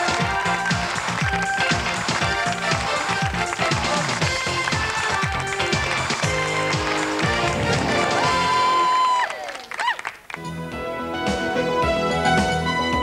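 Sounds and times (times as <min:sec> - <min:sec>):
game show theme music: 0:00.0 - 0:09.0
sliding bass notes: 0:00.8 - 0:08.8.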